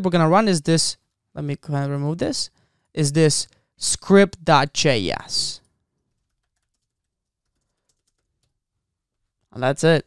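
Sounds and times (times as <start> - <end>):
faint keyboard typing: 5.6 - 9.5.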